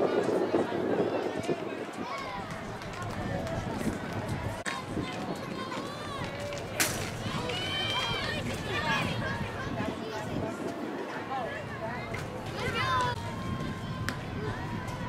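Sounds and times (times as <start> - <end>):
voices calling out and cheering: 0.0 - 15.0.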